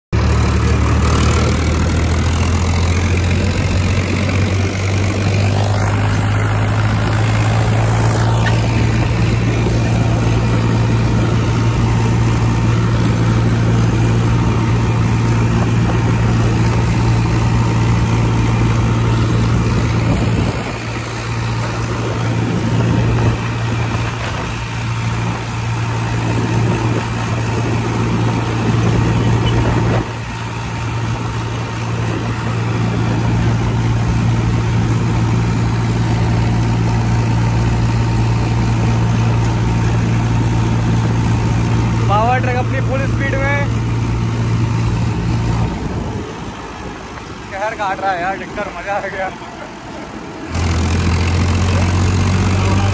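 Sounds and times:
tractor diesel engine running: 0:00.1 - 0:52.9.

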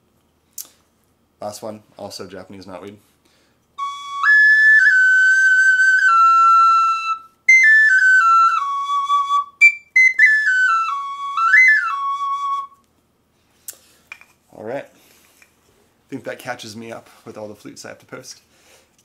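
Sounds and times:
pocket flute playing: 0:03.8 - 0:12.8.

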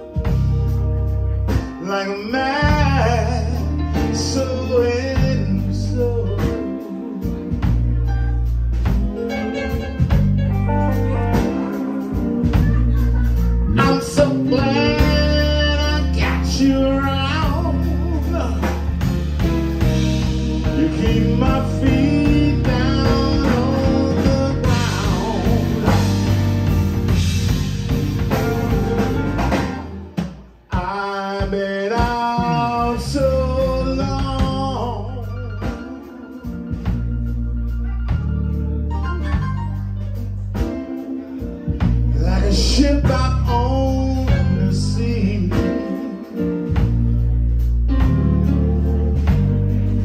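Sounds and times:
held low bass notes: 0:00.0 - 0:30.8, 0:32.0 - 0:50.0
blues band playing: 0:00.0 - 0:50.0
electric guitar: 0:00.0 - 0:50.0
organ: 0:00.0 - 0:50.0
man singing: 0:01.5 - 0:27.2, 0:30.7 - 0:38.5, 0:40.6 - 0:47.0.

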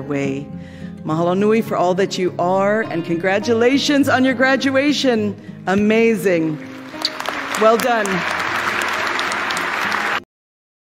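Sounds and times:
audience applauding: 0:06.6 - 0:10.3.

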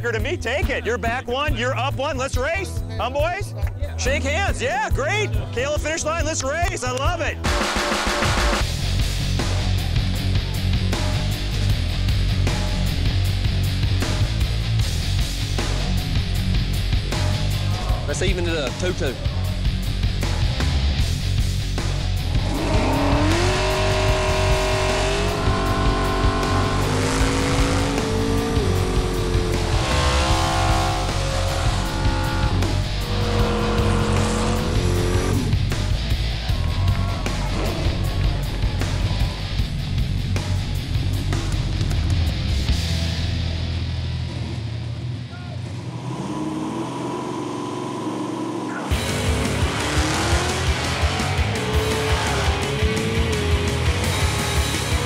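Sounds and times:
rock music: 0:00.0 - 0:45.9, 0:48.6 - 0:55.0
engines revving: 0:14.0 - 0:43.1, 0:45.6 - 0:55.0.

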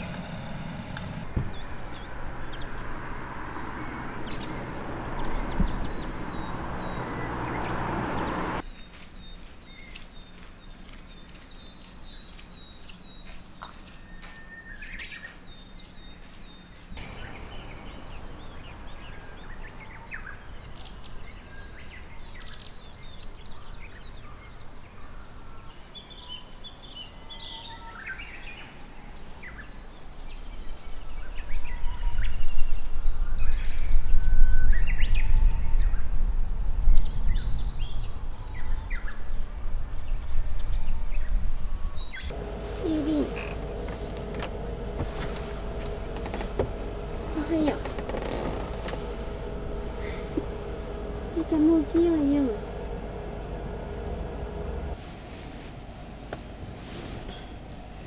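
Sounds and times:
birds chirping: 0:00.0 - 0:28.6, 0:35.8 - 0:55.0
loud low rumble: 0:42.2 - 0:55.0.

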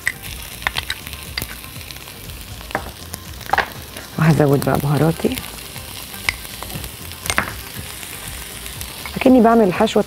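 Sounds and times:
meat sizzling in a pan: 0:00.0 - 0:10.0.

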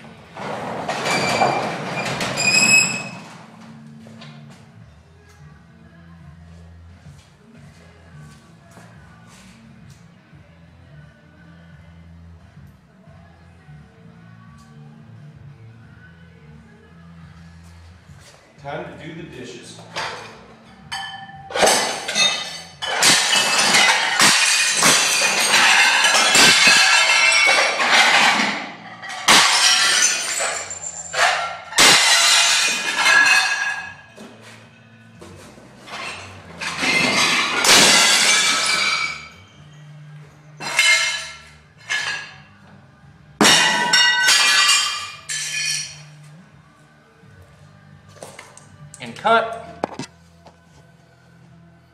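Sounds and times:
glass and crockery breaking: 0:00.6 - 0:03.2, 0:20.0 - 0:34.2, 0:35.9 - 0:39.6, 0:40.6 - 0:42.5, 0:43.4 - 0:46.1
shards tinkling: 0:20.0 - 0:34.2, 0:35.9 - 0:39.9, 0:43.4 - 0:46.2.

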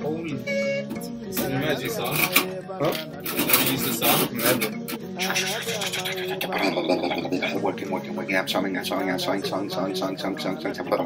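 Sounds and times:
man talking: 0:01.4 - 0:11.0.

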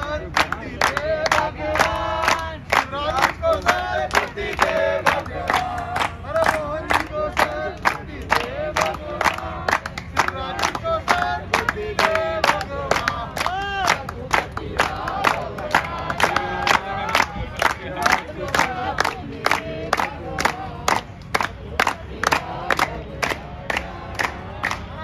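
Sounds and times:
crowd chanting: 0:00.0 - 0:25.0
rhythmic clapping: 0:00.0 - 0:25.0.

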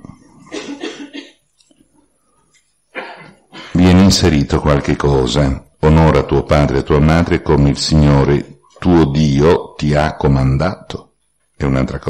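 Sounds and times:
man coughing: 0:00.4 - 0:01.4.

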